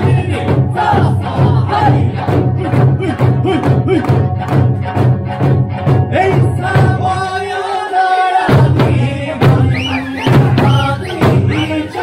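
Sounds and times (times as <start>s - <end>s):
hand drums: 0.0s - 7.3s, 8.5s - 12.0s
large barrel drums: 0.0s - 7.3s, 8.5s - 12.0s
accompanying music: 0.0s - 12.0s.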